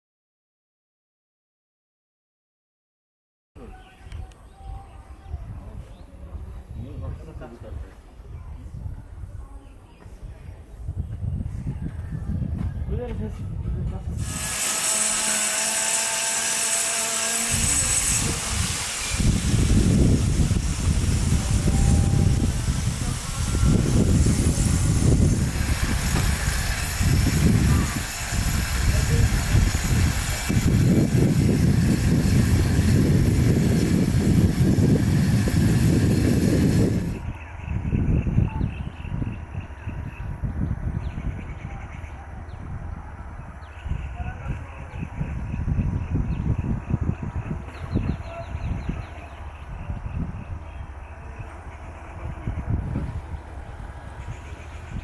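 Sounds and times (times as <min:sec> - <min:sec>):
wind buffeting microphone: 0:04.0 - 0:55.0.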